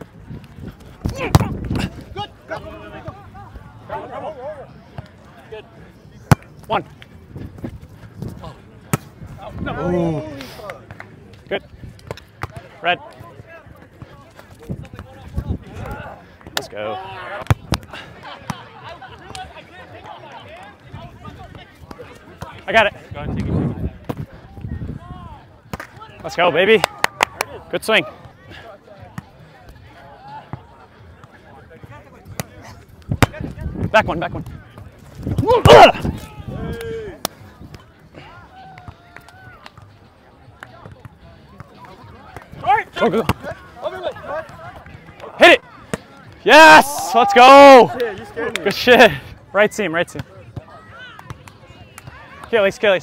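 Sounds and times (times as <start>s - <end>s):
faint voices of players: 0.0s - 53.0s.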